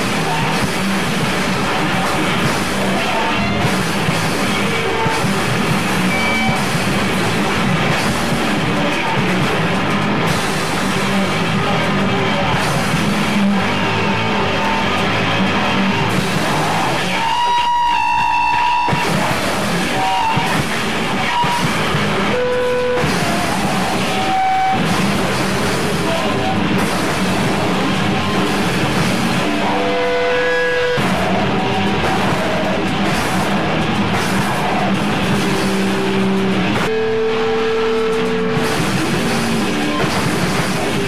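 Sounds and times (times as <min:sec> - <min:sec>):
harsh distorted noise music: 0:00.0 - 0:41.0
held whistling tones: 0:05.9 - 0:06.8, 0:17.0 - 0:26.8.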